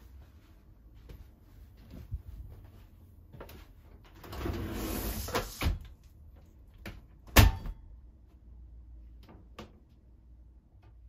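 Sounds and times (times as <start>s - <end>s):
plastic door rattling slide: 4.2s - 5.9s.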